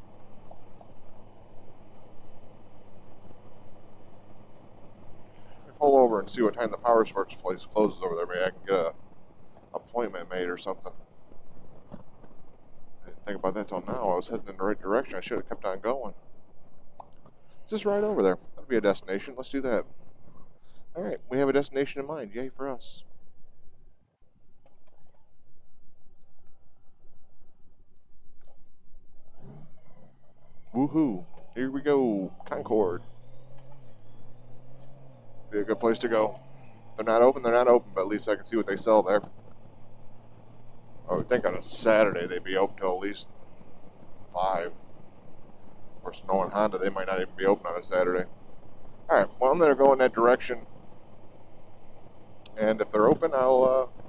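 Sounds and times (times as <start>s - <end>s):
motorcycle engine rumble: 0.0s - 23.9s, 24.5s - 54.0s
motorcycle engine drone: 0.0s - 54.0s.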